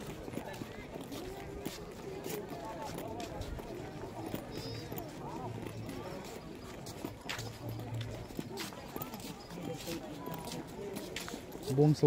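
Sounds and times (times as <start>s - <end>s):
distant murmur of voices: 0.0s - 12.0s
footsteps on stone paving: 0.0s - 12.0s.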